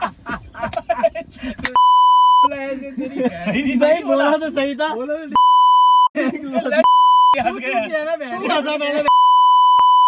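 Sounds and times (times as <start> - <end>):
censor beep: 1.8 - 2.5, 5.4 - 6.1, 6.8 - 7.4, 9.1 - 10.0.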